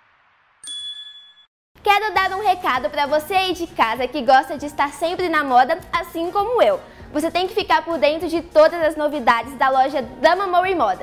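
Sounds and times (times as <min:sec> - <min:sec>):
bright bell chime: 0:00.6 - 0:01.5.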